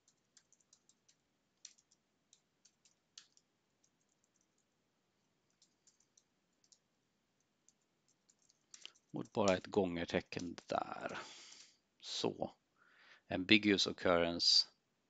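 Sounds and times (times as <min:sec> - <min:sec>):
computer keyboard keystrokes: 0:00.0 - 0:04.6, 0:05.5 - 0:06.8, 0:07.7 - 0:09.7.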